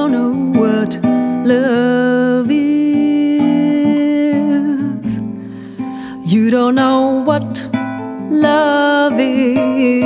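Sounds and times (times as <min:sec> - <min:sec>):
acoustic guitar accompaniment: 0:00.0 - 0:10.0.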